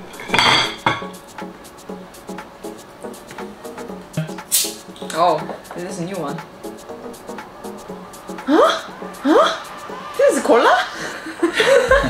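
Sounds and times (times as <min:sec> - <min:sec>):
glass bottles clinking: 0:00.0 - 0:01.2.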